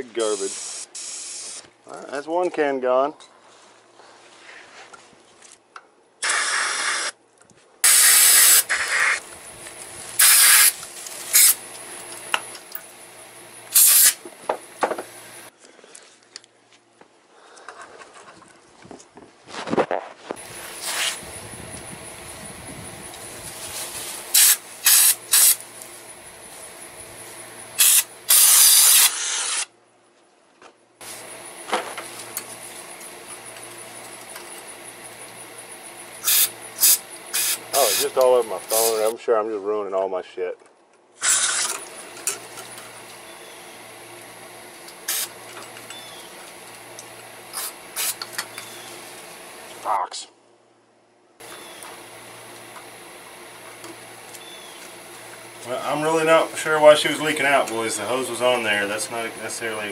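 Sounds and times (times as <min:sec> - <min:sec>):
aerosol spray hisses: 0:00.2 - 0:01.7, 0:07.8 - 0:09.2, 0:10.2 - 0:11.6, 0:13.7 - 0:14.2, 0:20.6 - 0:21.3, 0:23.6 - 0:25.6, 0:27.8 - 0:29.5, 0:36.2 - 0:39.0.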